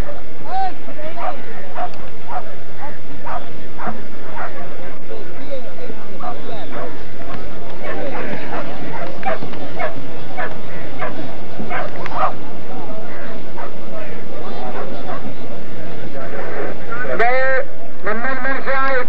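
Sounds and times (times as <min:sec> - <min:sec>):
dogs barking and yipping: 0:00.0 - 0:00.3, 0:01.0 - 0:15.5
crowd chatter: 0:00.0 - 0:19.0.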